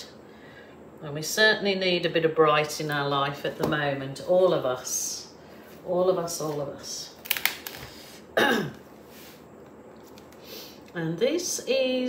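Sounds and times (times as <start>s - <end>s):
woman clearing her throat: 8.4s - 8.8s.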